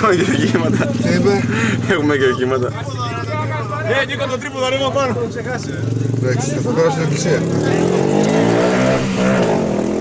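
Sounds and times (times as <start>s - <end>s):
car engine revving: 4.9s - 10.0s.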